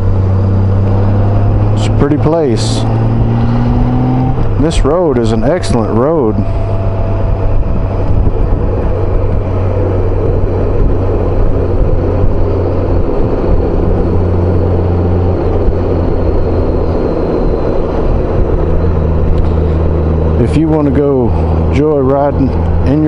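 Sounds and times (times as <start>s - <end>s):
motorcycle engine hum: 0.0s - 23.0s
wind rush on microphone: 0.0s - 23.0s.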